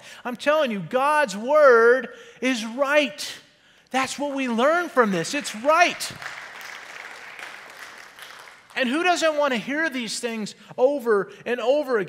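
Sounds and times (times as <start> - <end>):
congregation applauding: 4.7 - 9.6.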